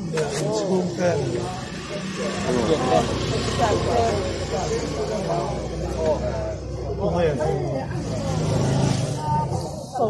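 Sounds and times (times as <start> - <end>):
people talking: 0.0 - 10.0
vehicle engine humming: 0.0 - 10.0.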